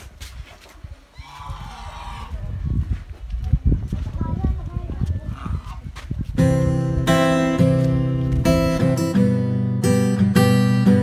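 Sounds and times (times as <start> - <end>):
geese calling: 1.2 - 2.4.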